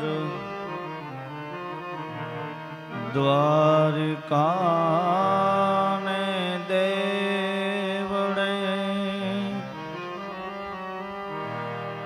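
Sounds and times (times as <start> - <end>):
person chanting in long notes: 0.0 - 1.0, 2.9 - 10.3.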